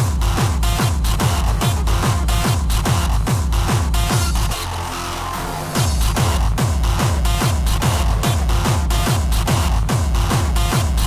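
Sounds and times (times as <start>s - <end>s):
hardstyle dance music: 0.0s - 11.0s
heavy distorted kick drum: 0.0s - 11.0s.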